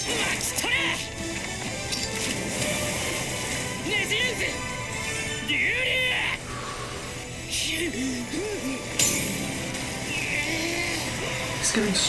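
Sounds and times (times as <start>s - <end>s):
dramatic background music: 0.0s - 12.0s
rushing sloshing water swirl: 2.2s - 5.0s
person shouting: 5.5s - 6.4s.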